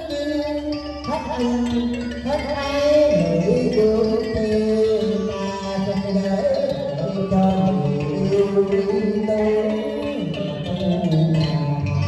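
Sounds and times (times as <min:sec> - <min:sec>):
man singing into a microphone: 0:00.0 - 0:12.0
plucked strings: 0:00.0 - 0:12.0.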